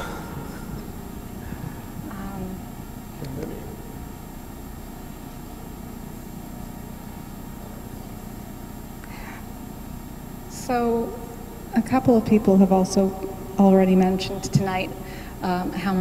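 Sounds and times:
faint murmurs: 0.0s - 4.0s
room tone rumble and hiss: 0.0s - 16.0s.

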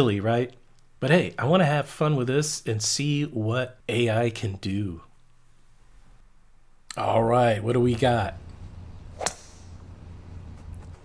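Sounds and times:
faint low hum: 0.0s - 11.0s
golf club swish: 8.4s - 11.0s.

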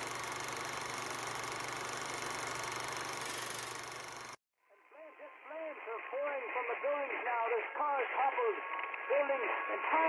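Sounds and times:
voice through radio speaker: 4.9s - 10.0s.

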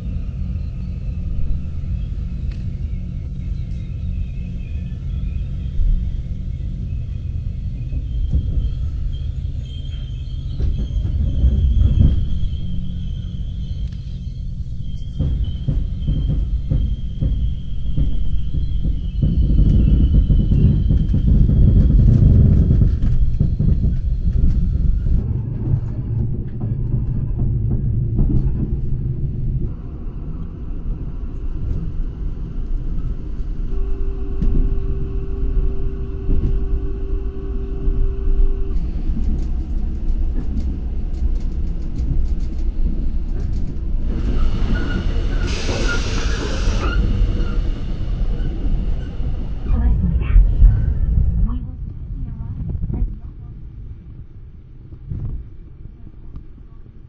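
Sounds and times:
train rumble and clatter: 0.0s - 57.0s
loud hissing rush: 44.2s - 51.4s.

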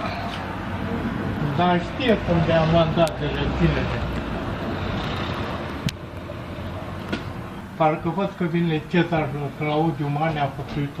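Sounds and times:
road traffic rushing: 0.0s - 11.0s.

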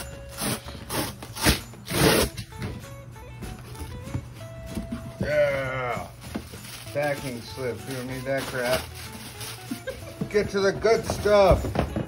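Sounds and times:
duct tape ripping: 0.3s - 2.5s
cardboard rustling: 3.4s - 12.0s.

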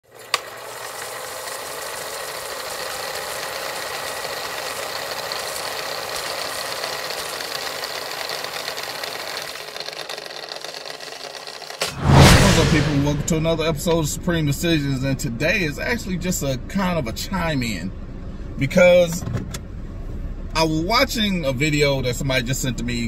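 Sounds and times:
film projector clatter: 0.0s - 11.9s.

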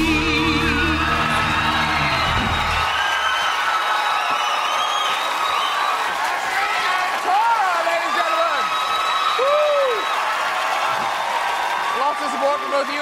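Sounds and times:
pop band playing: 0.0s - 3.0s
audience cheering and applauding: 0.0s - 13.0s.

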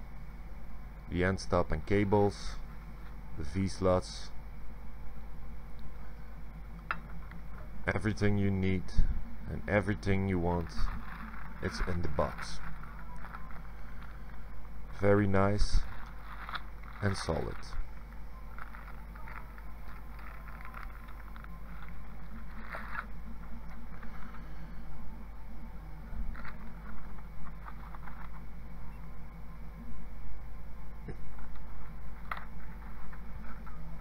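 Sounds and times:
steady low hum: 0.0s - 34.0s
plastic bag crinkling: 10.6s - 24.6s, 26.2s - 28.5s.

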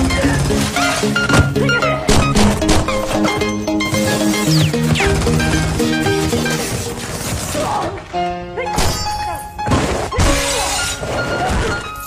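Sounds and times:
film score music: 0.0s - 12.0s.

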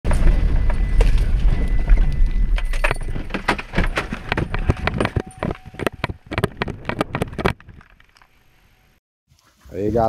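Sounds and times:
cabin rattling and clattering: 2.6s - 7.8s.

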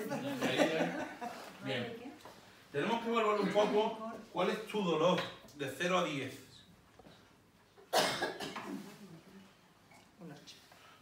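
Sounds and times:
person coughing: 7.9s - 8.9s.

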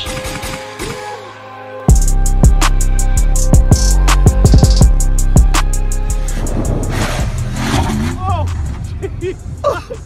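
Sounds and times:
music drumbeat: 1.9s - 9.5s
suv engine revving: 5.2s - 9.0s
loud rushing noise: 6.0s - 8.8s.

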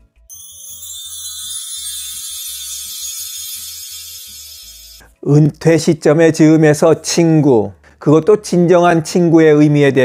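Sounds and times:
soft background music: 0.0s - 10.0s
shimmering chime: 0.3s - 5.1s.

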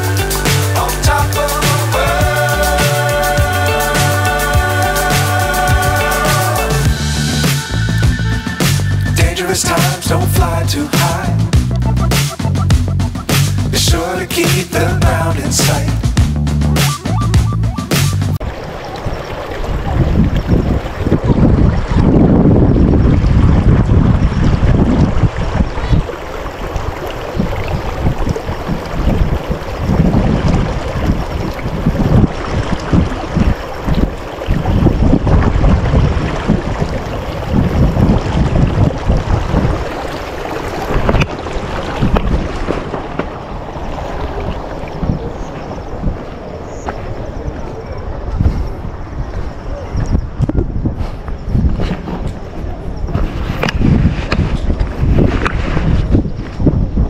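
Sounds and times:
wind buffeting microphone: 17.0s - 57.0s.

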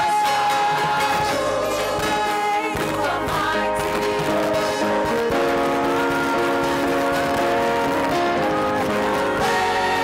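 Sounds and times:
band accompaniment: 0.0s - 10.0s
women singing in harmony: 0.0s - 10.0s.

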